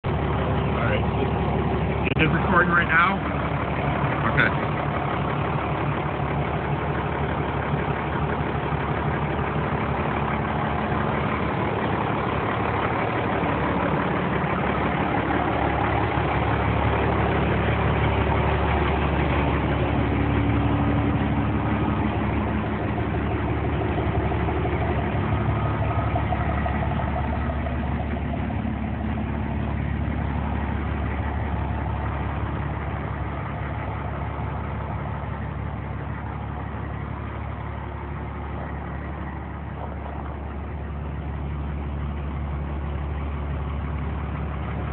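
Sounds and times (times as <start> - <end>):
fire truck engine idling: 0.0 - 44.9.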